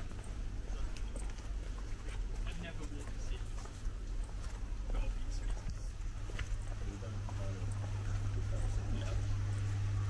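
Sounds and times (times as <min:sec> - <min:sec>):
faint indistinct background sounds: 0:00.0 - 0:10.0
low electrical hum: 0:00.0 - 0:10.0.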